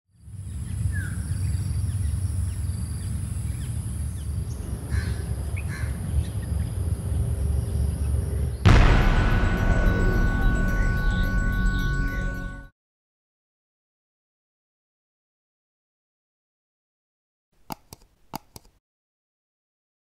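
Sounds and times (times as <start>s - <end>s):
music: 8.7s - 12.7s
steady high-pitched whine: 8.7s - 12.7s.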